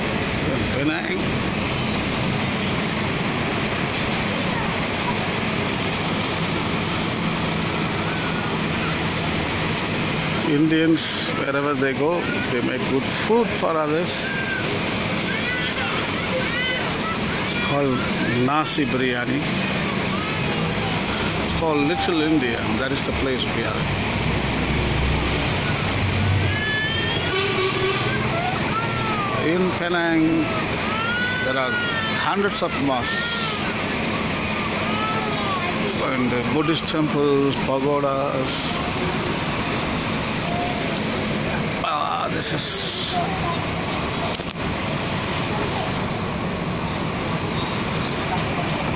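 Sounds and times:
bus engine humming: 0.0 - 48.9
road and wind noise: 0.0 - 48.9.

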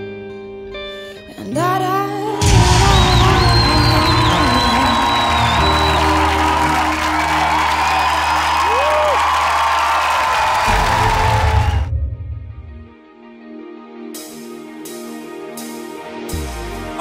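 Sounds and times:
audience cheering and applauding: 2.4 - 12.2.

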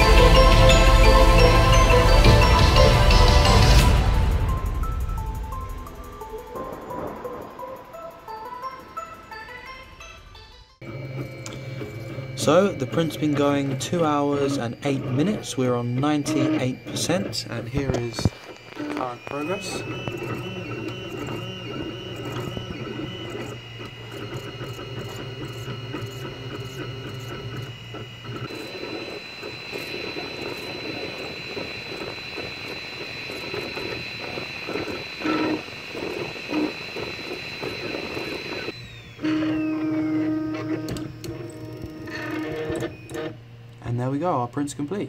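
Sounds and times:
stepper motors whining: 0.0 - 45.0.

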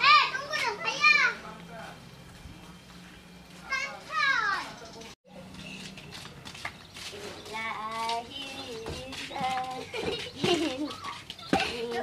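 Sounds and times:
child shouting: 0.0 - 1.4.

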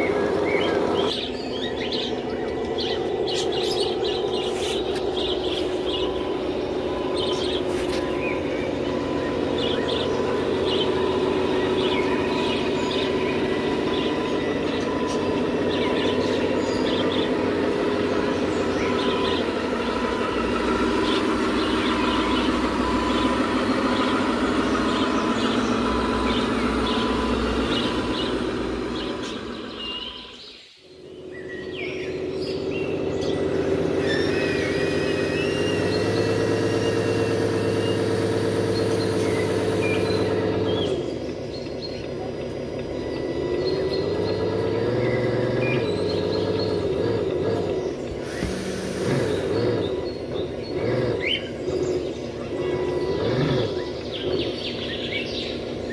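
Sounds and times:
small birds chirping: 0.0 - 55.9
toy truck motor whining hum: 33.1 - 41.4, 42.6 - 54.8.

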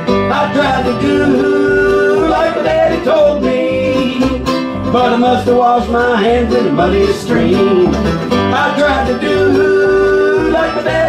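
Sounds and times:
bluegrass band playing: 0.0 - 11.0.

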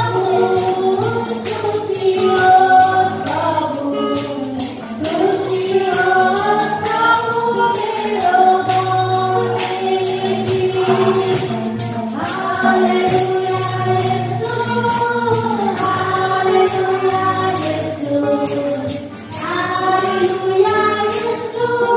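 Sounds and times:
steady percussion beat: 0.0 - 21.9
women singing worship song: 0.0 - 21.9.

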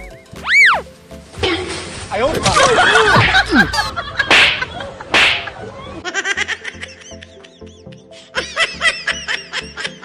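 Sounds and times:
whip crack effect: 4.3 - 5.6.

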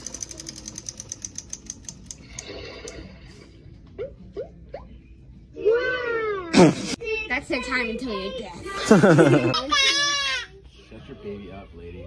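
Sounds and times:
baby toy rapid ticking: 0.0 - 2.4.

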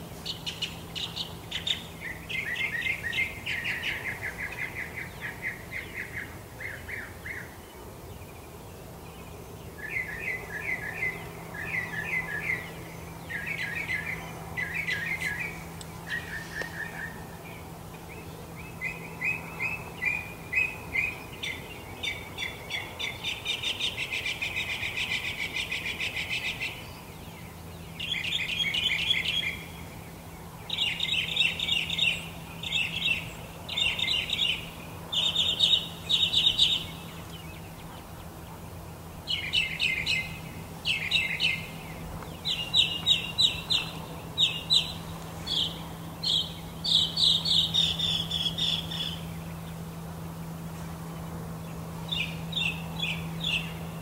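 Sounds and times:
birds chirping in trills: 0.0 - 54.0
faint low hum: 0.0 - 54.0.

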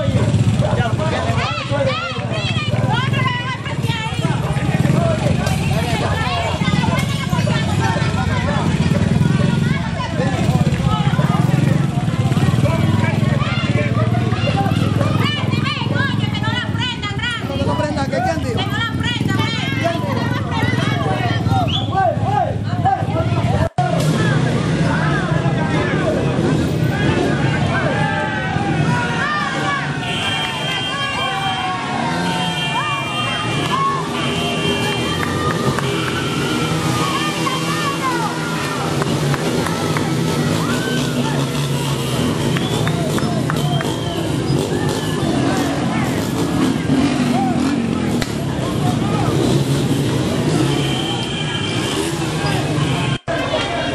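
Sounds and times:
small motorcycle engine running: 0.0 - 21.7, 29.9 - 53.2
people talking and calling out: 0.0 - 53.9
people's voices: 0.0 - 53.9.

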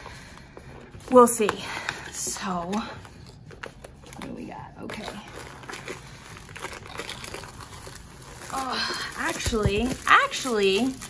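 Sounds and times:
cardboard packaging rustling: 0.7 - 11.0.

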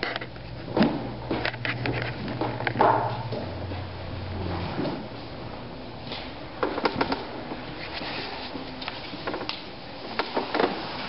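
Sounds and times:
low steady hum: 0.0 - 11.0
shuffling and rustling: 7.1 - 11.0.

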